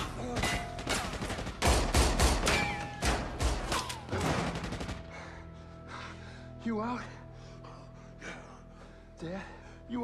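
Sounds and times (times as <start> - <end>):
film score low sustained tones: 4.4 - 10.0.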